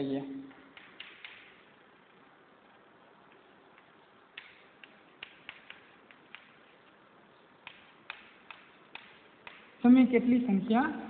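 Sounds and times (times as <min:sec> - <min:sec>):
faint room hiss: 0:00.0 - 0:11.0
chalk tapping on chalkboard: 0:03.8 - 0:06.9, 0:07.6 - 0:09.8.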